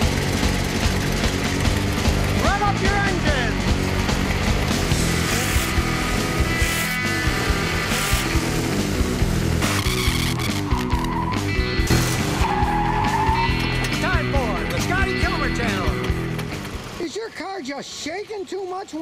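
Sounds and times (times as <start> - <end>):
car engine revving: 0.0 - 17.0.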